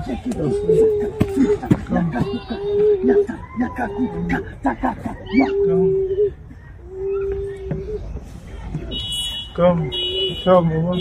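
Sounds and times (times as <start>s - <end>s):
person giving a long cry: 0.0s - 8.1s.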